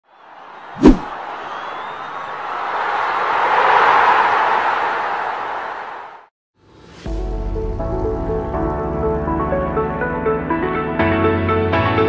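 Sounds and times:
rush of noise: 0:00.8 - 0:01.1.

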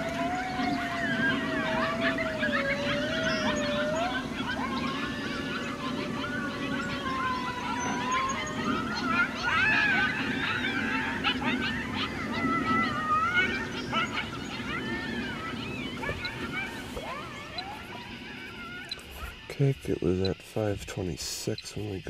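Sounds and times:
coyotes howling: 0:00.0 - 0:20.7
coyotes yipping: 0:00.0 - 0:20.8.

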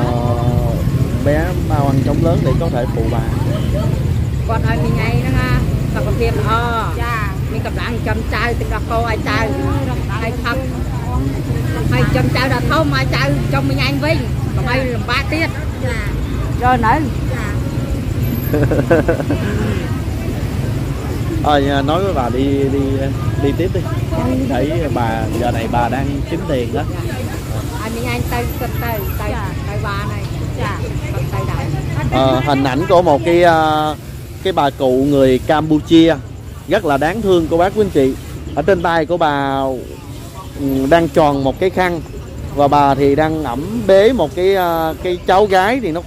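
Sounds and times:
motorbike traffic rumble: 0:00.0 - 0:46.0
people talking: 0:00.0 - 0:46.0.

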